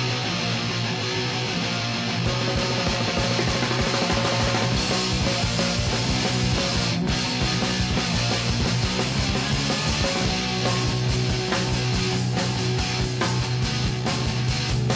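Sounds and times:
rock band playing: 0.0 - 14.9.

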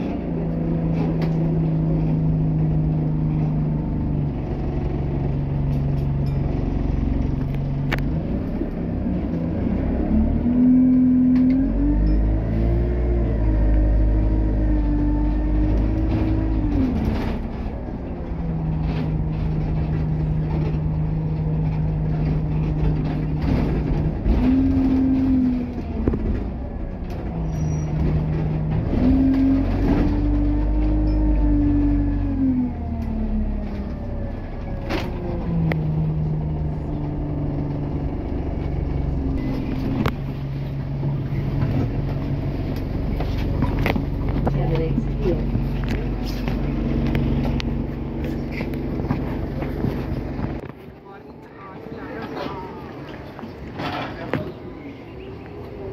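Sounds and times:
bus engine idling and revving: 0.0 - 55.9
knocks and clicks from bus body: 4.8 - 8.6, 15.2 - 32.0, 36.9 - 50.8.

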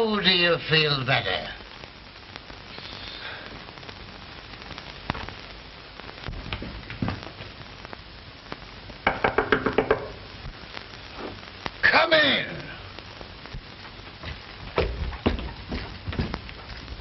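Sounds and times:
film soundtrack hiss and crackle: 0.0 - 17.0
rapid knocking on a door: 9.1 - 10.1.

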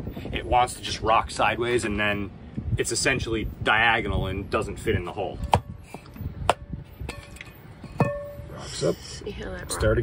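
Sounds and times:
metal drum ringing: 6.6 - 8.6.

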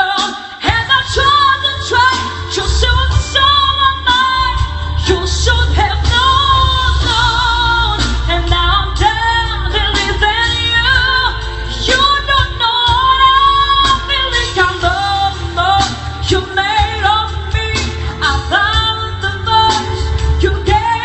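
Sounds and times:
instrumental accompaniment with bass: 0.0 - 21.0
woman singing pop song: 0.0 - 21.0.

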